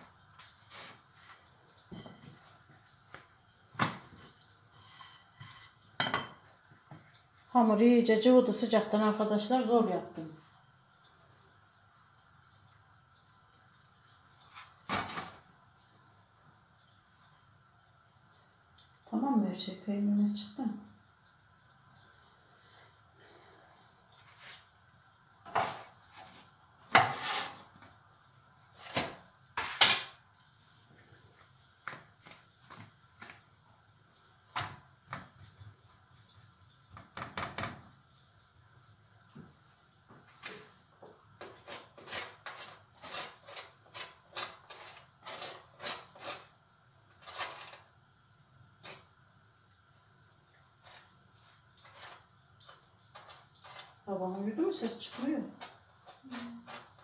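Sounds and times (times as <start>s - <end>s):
kitchen knocks and clatters: 1.8s - 2.6s, 3.7s - 7.1s, 14.8s - 15.4s, 25.5s - 27.6s, 28.9s - 30.2s, 36.9s - 37.9s.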